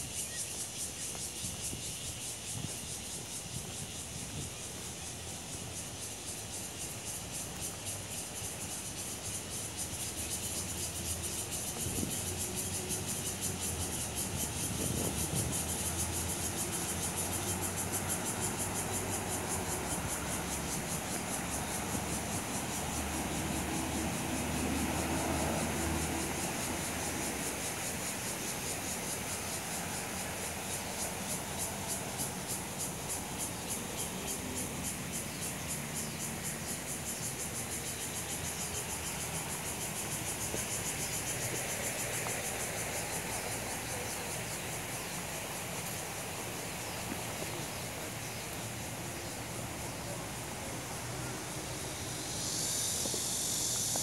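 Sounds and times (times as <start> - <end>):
insects buzzing in trees: 0.0 - 54.0.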